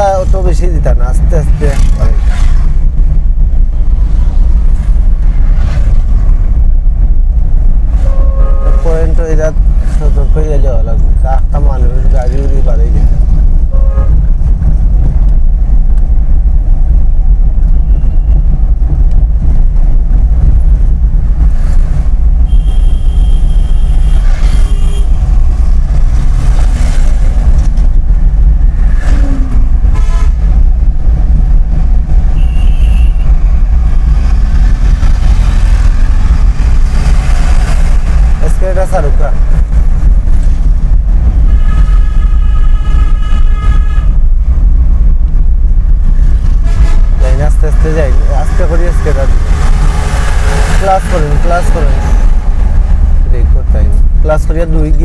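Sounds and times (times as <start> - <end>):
car engine and road noise: 0.0 - 55.0
vehicle horn: 8.0 - 9.0, 13.7 - 14.3, 22.5 - 25.2, 29.0 - 30.4, 32.3 - 33.4, 41.4 - 44.2.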